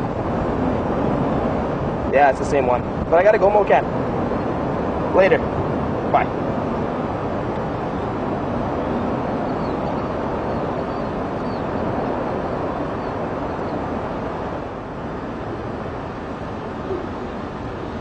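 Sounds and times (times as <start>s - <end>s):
rushing wind: 0.0s - 18.0s.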